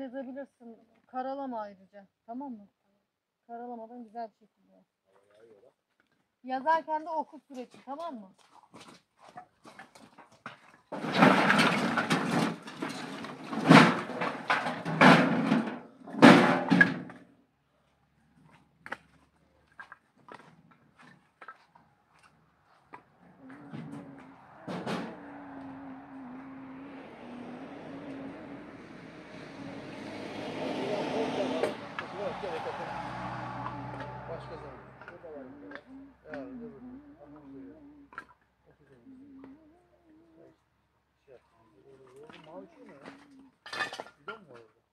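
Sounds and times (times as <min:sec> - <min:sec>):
vehicle engine passing: 0:21.8 - 0:37.8.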